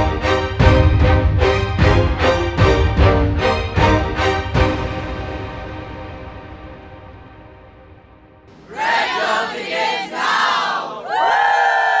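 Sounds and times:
choir shouting in unison: 8.5s - 12.0s.

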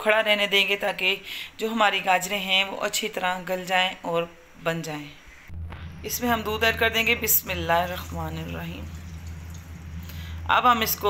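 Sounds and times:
milk pouring splash: 7.9s - 10.4s.

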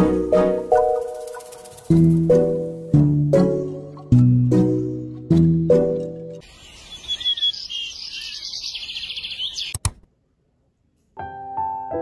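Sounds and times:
birds chirping: 0.6s - 2.6s, 6.4s - 9.9s.

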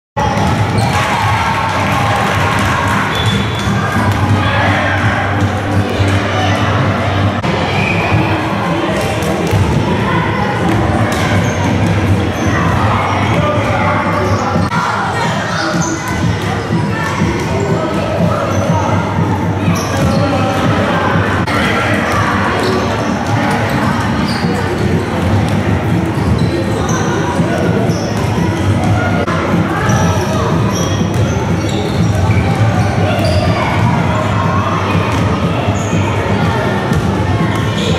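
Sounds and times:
basketballs bouncing on gym floor: 0.2s - 4.4s, 9.0s - 9.8s, 19.7s - 20.8s, 23.5s - 29.1s, 36.8s - 37.9s
children's voices: 0.9s - 37.9s
basketballs bouncing on wooden floor: 36.9s - 37.2s.

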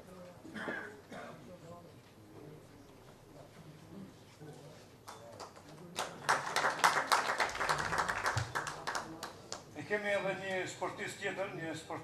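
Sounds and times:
audience applauding: 6.0s - 9.3s.

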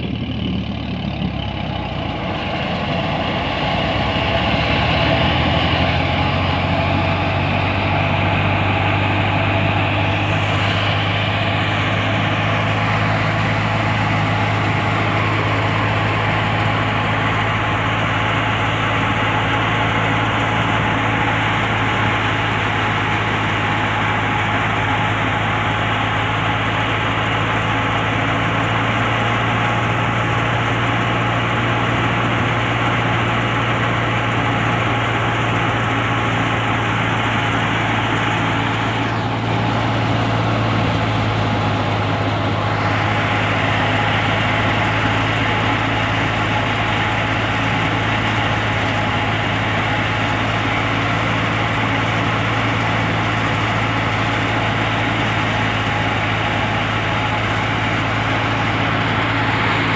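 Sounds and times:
thresher machine drone: 0.0s - 59.9s.

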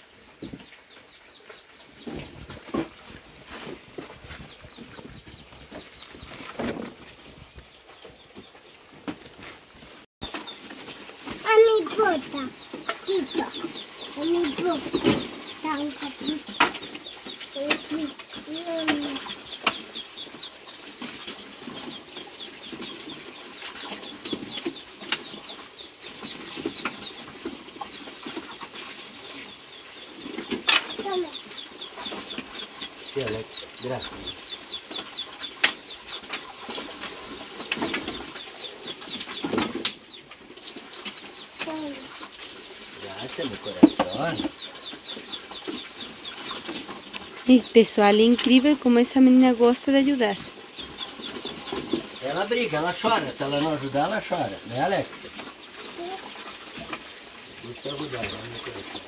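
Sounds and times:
rapid high chirping: 11.4s - 20.6s.

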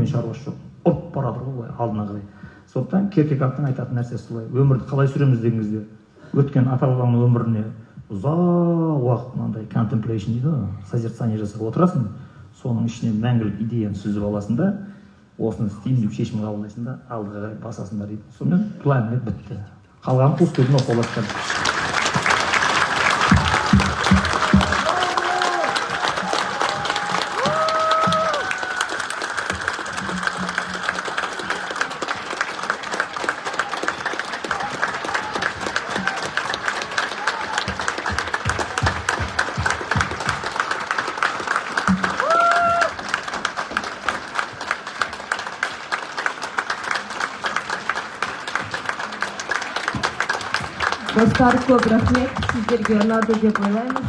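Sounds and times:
large audience applauding: 20.4s - 54.0s
pitched calls and cheers: 21.7s - 53.0s.

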